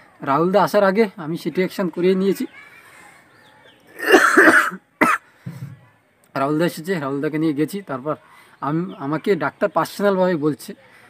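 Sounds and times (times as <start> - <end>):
catch of breath: 5.2 - 5.8.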